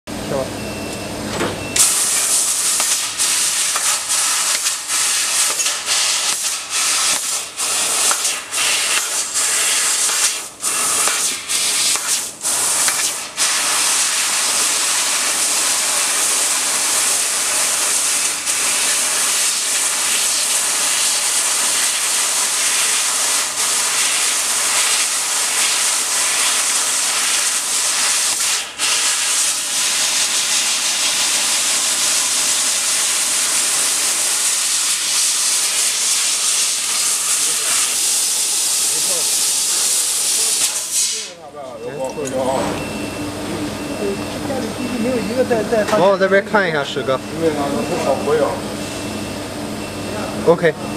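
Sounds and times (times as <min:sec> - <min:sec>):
laser cutter gas hiss: 0:01.8 - 0:41.5.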